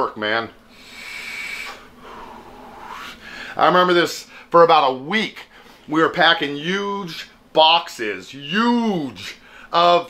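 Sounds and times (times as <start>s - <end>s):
breathy exhale hiss: 0.7s - 3.6s, 4.2s - 4.5s, 9.4s - 9.8s
vape inhale hiss: 0.7s - 3.6s.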